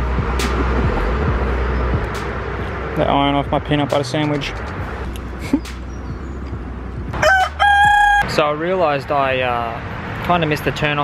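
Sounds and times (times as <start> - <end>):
highway traffic rumble: 0.0 - 11.0.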